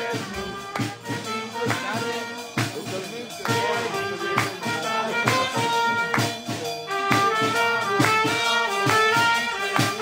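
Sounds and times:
people's voices: 0:00.0 - 0:10.0
upbeat music with steady beat: 0:00.0 - 0:10.0.

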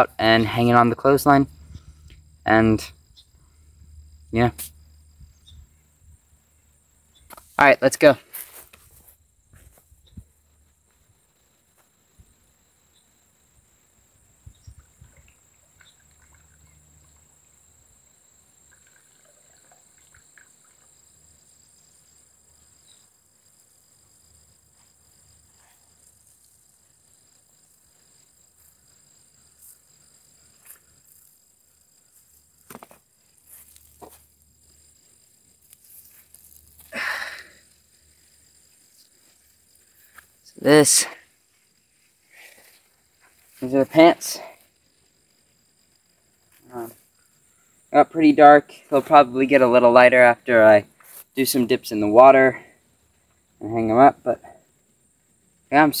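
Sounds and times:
high-pitched insect drone: 0:00.0 - 0:56.0
rustling: 0:08.2 - 0:10.2, 0:29.5 - 0:43.7.

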